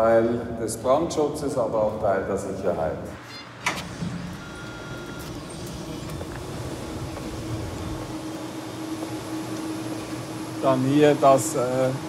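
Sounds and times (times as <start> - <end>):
cooling fans whirring: 0.0 - 12.0
low steady hum: 4.1 - 12.0.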